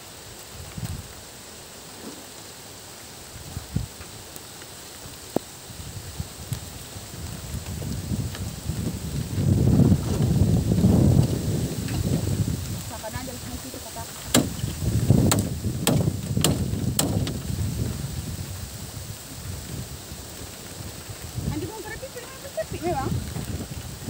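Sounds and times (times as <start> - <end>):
wind buffeting microphone: 5.6 - 24.0.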